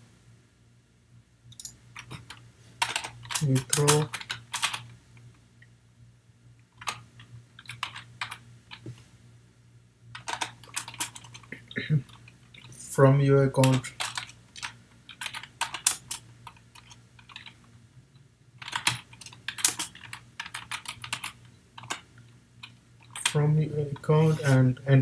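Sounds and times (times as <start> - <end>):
typing on computer keyboard: 7.6 - 8.8, 13.6 - 17.6, 18.6 - 22.0.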